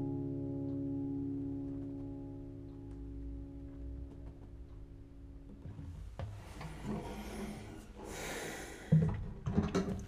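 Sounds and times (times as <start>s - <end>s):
breath out through nose: 6.8s - 9.1s.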